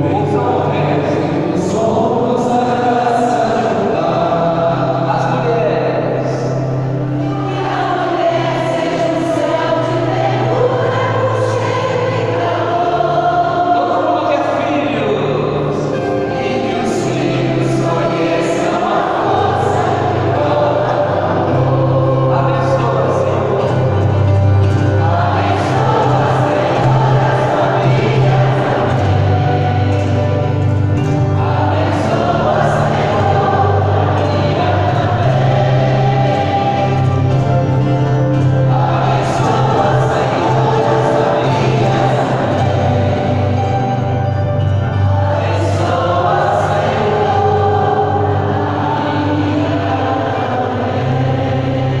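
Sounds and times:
congregation singing a hymn: 0.0 - 52.0.

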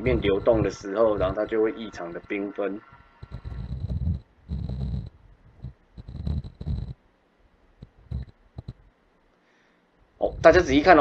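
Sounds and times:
microphone handling rumble: 0.0 - 7.0, 7.8 - 8.9, 10.2 - 11.0
small clicks: 7.8 - 8.8.

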